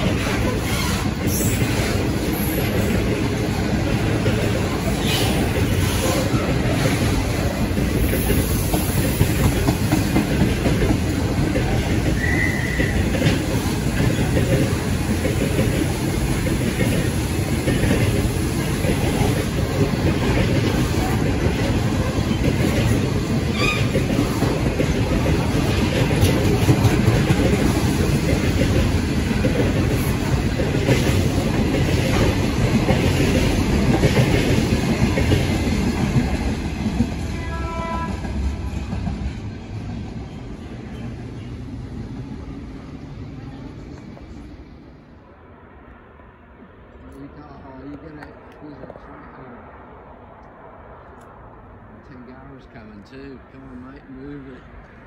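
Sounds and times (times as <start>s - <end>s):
freight train rumbling past: 0.0s - 55.0s
high wheel squeals: 12.2s - 13.1s.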